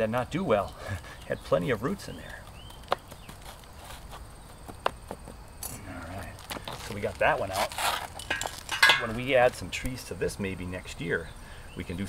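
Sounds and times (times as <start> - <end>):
hands scraping in gravelly soil: 0.0 - 4.3, 5.6 - 9.7.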